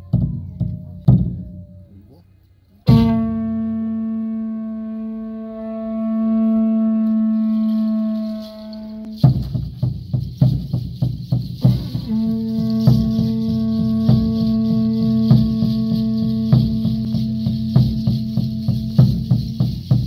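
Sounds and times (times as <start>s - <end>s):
conch shell trumpet note: 2.9s - 9.3s, 11.6s - 20.0s
rattle shaken: 7.1s - 20.0s.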